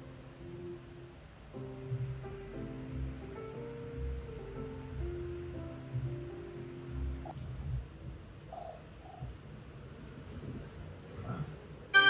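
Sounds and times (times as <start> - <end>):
low background hum: 0.0 - 12.0
faint bird calls on television: 8.4 - 9.4.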